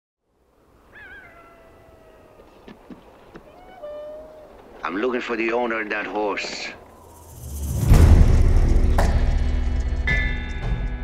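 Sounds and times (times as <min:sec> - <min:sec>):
animal howling: 0:00.9 - 0:02.6, 0:03.4 - 0:04.8.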